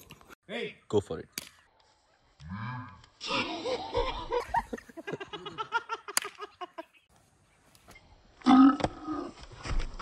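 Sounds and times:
people laughing hard: 3.2 - 6.9.

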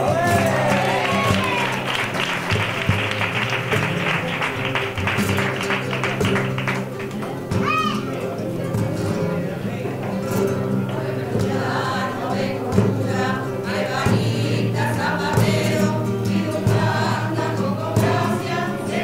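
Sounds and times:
hand clapping rhythm: 0.0 - 9.0
flamenco guitar and voices: 0.0 - 19.0.

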